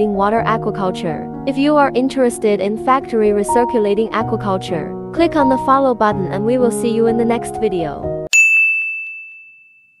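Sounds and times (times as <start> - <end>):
background music: 0.0 - 8.3
bright chime ding: 8.3 - 10.0.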